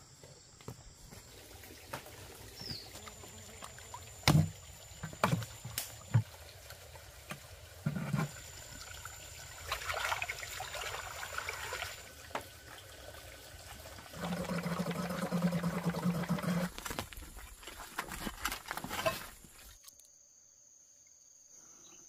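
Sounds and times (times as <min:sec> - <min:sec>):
water splashing and sloshing: 0:01.0 - 0:19.8.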